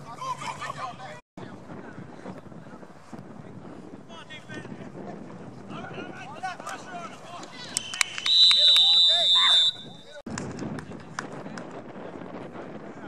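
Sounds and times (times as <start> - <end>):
players shouting: 5.8 - 10.2
referee's whistle: 7.7 - 10.2.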